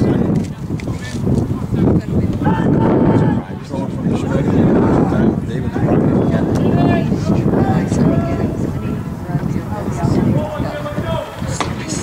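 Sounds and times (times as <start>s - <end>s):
indistinct chatter of voices: 0.0s - 12.0s
wind buffeting microphone: 0.0s - 12.0s.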